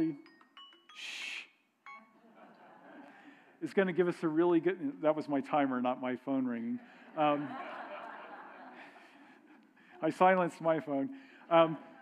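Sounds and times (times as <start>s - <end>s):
timer alarm beeping: 0.0s - 2.2s.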